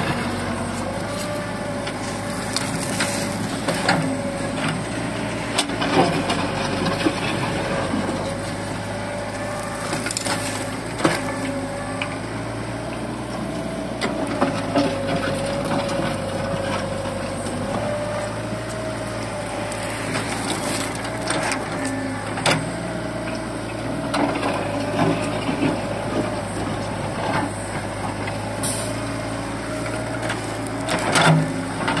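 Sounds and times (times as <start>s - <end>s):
excavator running with whine: 0.0s - 32.0s.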